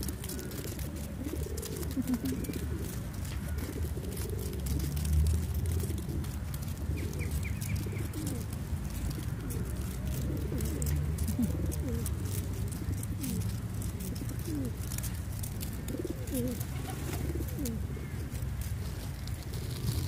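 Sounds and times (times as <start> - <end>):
pigeons cooing: 0.0 - 20.0.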